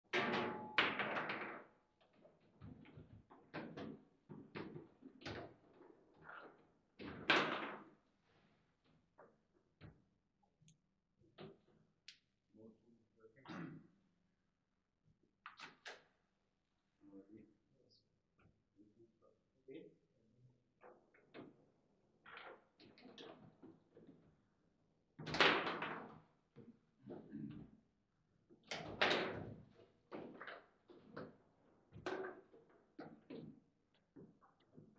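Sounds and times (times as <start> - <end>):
foosball table knocking and clattering: 0.1 - 1.7, 7.2 - 8.0.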